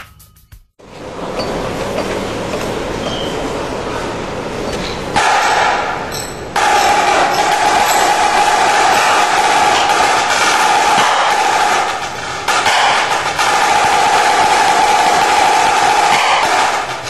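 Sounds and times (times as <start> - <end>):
snare drum rolls: 5.1 - 17.0.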